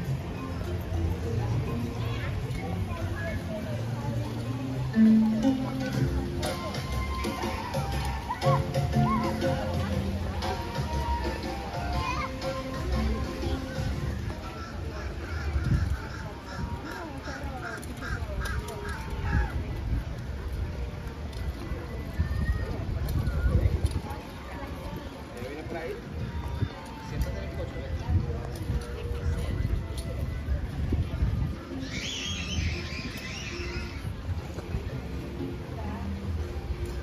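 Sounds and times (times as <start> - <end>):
rumble of people walking: 0.0 - 37.0.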